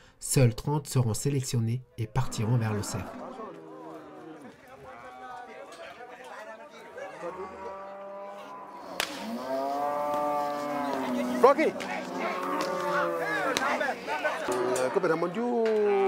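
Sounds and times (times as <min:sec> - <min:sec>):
cattle mooing: 0:07.2 - 0:15.1.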